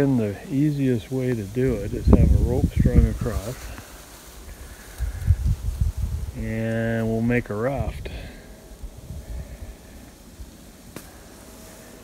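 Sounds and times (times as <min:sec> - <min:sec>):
faint steady hum: 0:00.0 - 0:12.0
low rumble on microphone: 0:00.0 - 0:12.0.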